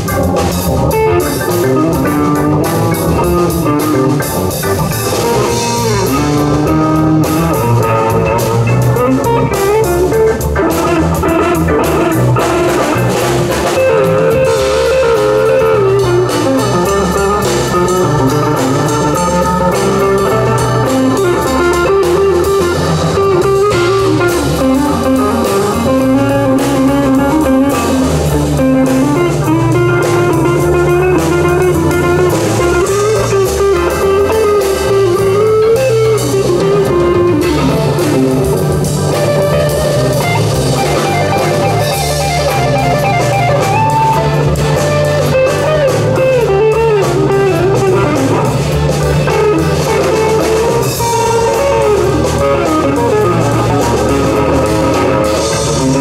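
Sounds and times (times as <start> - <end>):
bass notes: 0.0 - 56.0
drum kit: 0.0 - 56.0
electric guitar melody: 0.0 - 56.0.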